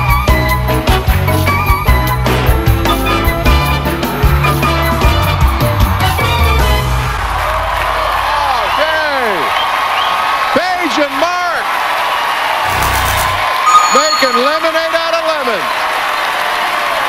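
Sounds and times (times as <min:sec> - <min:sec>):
audience cheering and applauding: 0:05.0 - 0:17.0
loud whoops: 0:07.4 - 0:10.6
upbeat dance music: 0:12.7 - 0:14.6.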